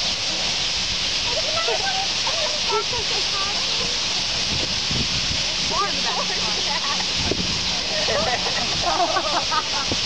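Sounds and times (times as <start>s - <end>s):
flock of birds chattering: 0.0s - 10.0s
lower calls or voices: 0.0s - 10.0s.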